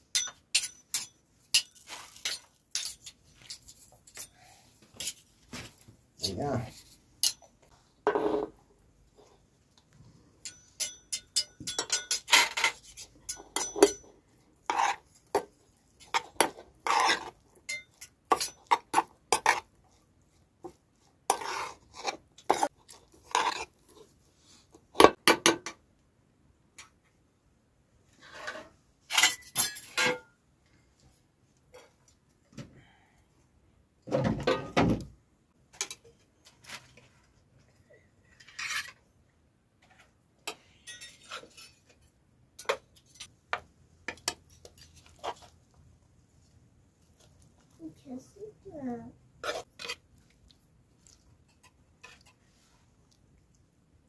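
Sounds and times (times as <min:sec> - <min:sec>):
metal spoons clinking on bowls: 0:00.1 - 0:04.3, 0:10.4 - 0:19.5, 0:29.1 - 0:30.2, 0:40.5 - 0:43.3.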